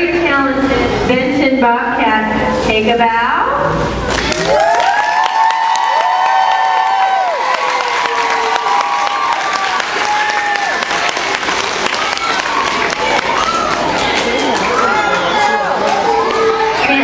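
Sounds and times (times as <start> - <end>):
children clapping and cheering: 4.1 - 17.0.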